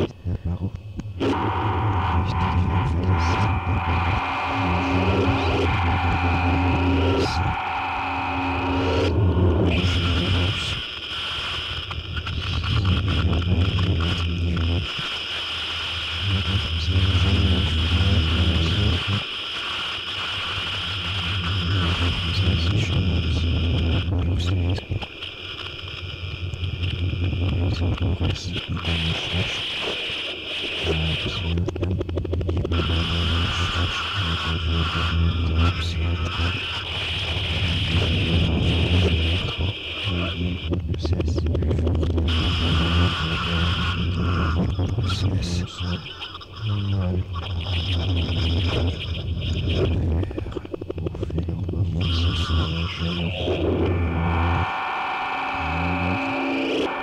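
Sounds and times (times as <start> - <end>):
voice-like sounds: 0.0 - 10.8, 12.1 - 15.1, 16.2 - 19.3, 20.8 - 25.1, 26.4 - 30.0, 30.6 - 57.0
low pulsing drone: 0.0 - 11.0, 11.9 - 15.2, 16.1 - 19.3, 20.6 - 25.1, 26.1 - 29.8, 30.6 - 57.0
steady high band: 1.2 - 10.2.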